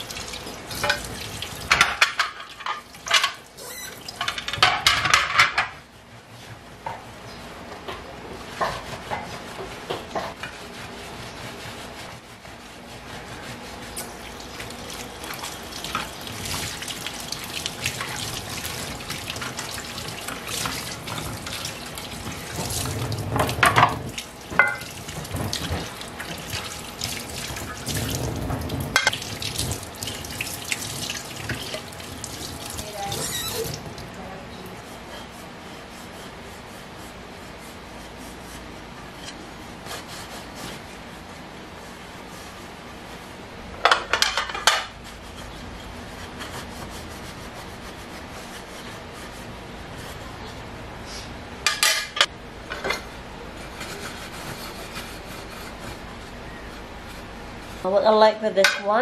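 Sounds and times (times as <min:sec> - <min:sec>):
tap water running and splashing: 0:00.0 - 0:05.3, 0:14.0 - 0:34.2
cloth rubbing over metal plates: 0:08.4 - 0:16.6.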